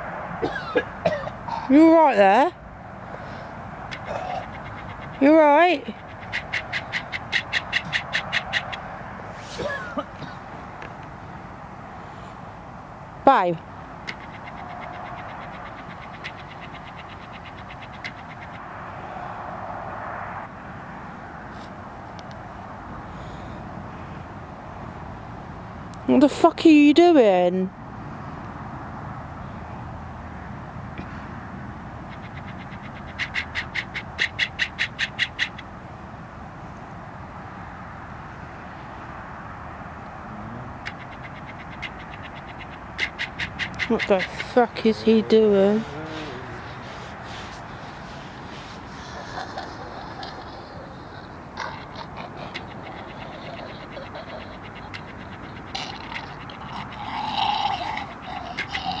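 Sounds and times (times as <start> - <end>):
bird calling sharp high notes: 40.9 - 48.2.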